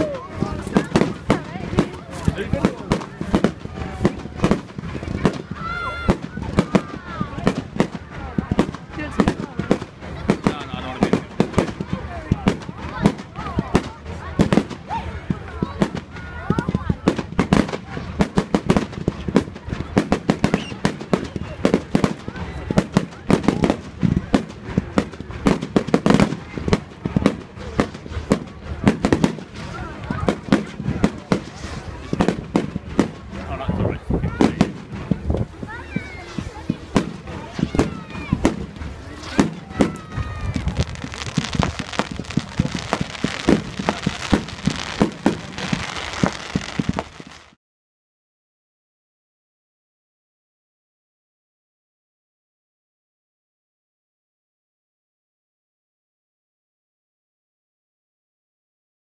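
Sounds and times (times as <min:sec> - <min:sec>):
fireworks bangs and crackles: 0:00.0 - 0:47.6.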